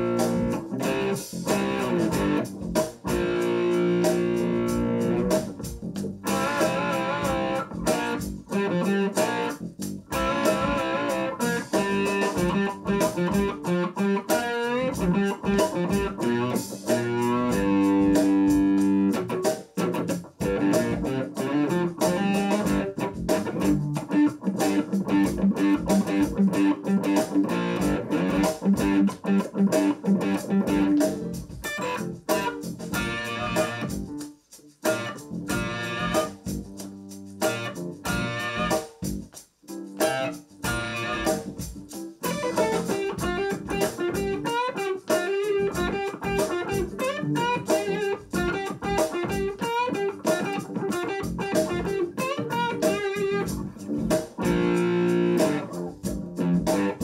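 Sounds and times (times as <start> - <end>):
distorted electric guitar: 0.0 - 34.2, 34.8 - 57.0.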